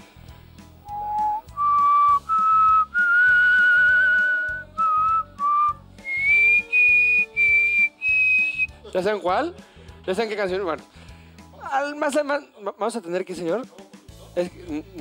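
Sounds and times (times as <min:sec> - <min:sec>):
man whistling a tune: 0:00.8 - 0:08.8.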